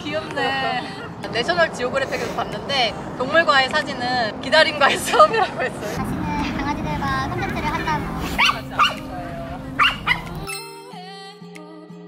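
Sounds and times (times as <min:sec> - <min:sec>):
outdoor background noise: 0:00.0 - 0:10.7
small dog barking: 0:08.4 - 0:09.0, 0:09.8 - 0:10.4
music: 0:08.5 - 0:12.0.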